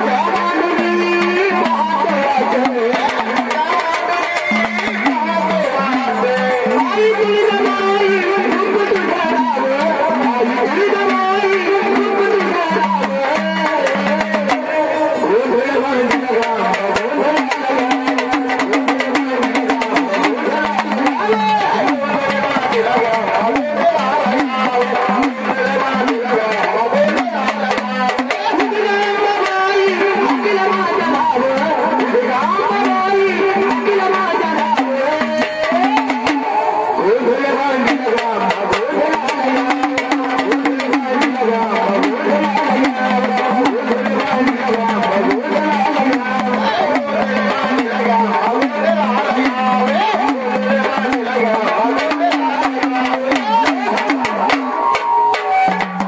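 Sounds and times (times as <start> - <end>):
man singing: 0.0 - 56.0
waist drum: 0.0 - 56.0.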